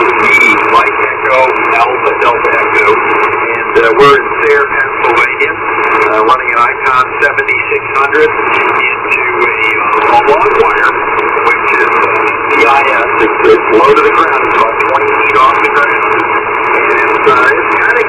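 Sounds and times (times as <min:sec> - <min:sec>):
radio static hiss: 0:00.0 - 0:18.0
radio voice over speaker: 0:00.0 - 0:18.0.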